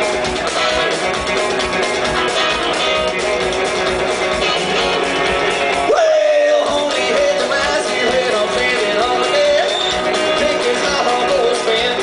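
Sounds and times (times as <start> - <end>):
rock band playing instrumental: 0.0 - 12.0.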